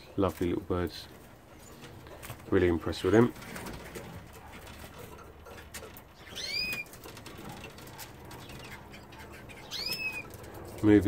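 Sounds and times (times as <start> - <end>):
canary chirps: 5.4 - 10.6.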